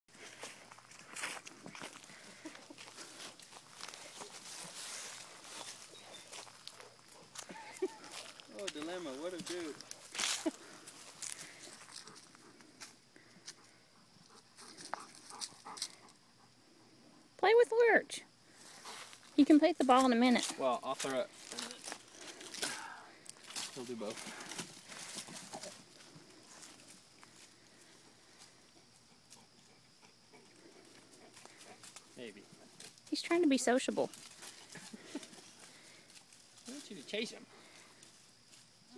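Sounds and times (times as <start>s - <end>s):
paws crunching through dry leaves: 0.1s - 12.8s.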